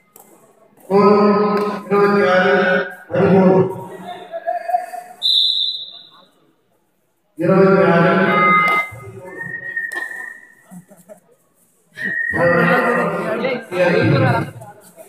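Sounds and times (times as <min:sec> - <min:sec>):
loud shouting voices: 0:00.9 - 0:05.2, 0:07.4 - 0:09.7, 0:12.0 - 0:14.6
high whistle blast: 0:05.2 - 0:06.2.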